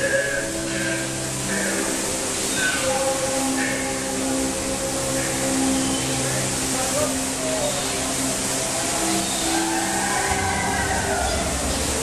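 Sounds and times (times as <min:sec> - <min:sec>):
eerie background music: 0:00.0 - 0:12.0
rushing flowing water: 0:00.0 - 0:12.0.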